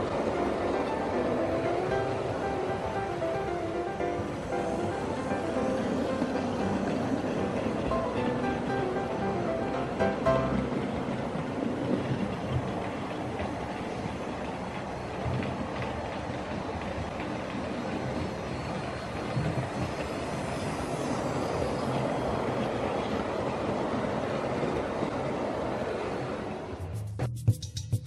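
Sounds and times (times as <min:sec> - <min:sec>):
model locomotive passing: 0:00.0 - 0:26.9.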